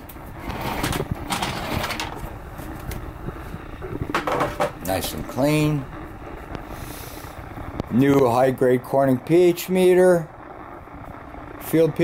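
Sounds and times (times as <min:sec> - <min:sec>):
tray rubbing: 0:00.4 - 0:02.3
tray knocking and clicking: 0:04.1 - 0:04.8.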